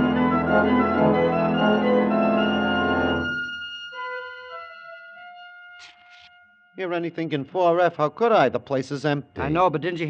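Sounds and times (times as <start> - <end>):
quiet sustained organ notes: 0.0 - 3.7
organ chord: 0.0 - 5.5.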